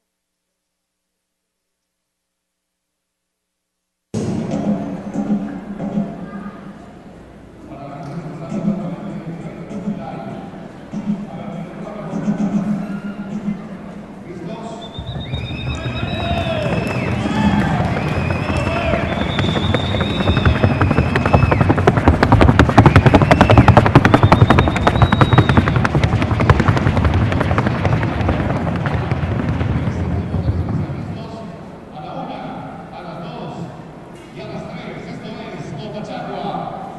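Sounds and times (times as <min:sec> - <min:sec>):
hoofbeats on wooden board: 0:15.0 - 0:31.2.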